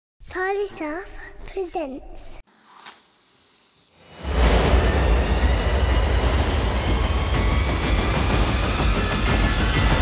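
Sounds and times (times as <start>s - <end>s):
deep bass rumble: 4.3s - 10.0s.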